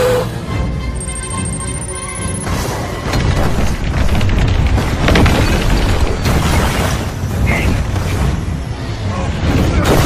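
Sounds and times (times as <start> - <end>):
low rumble and booming impacts: 3.0 - 10.0.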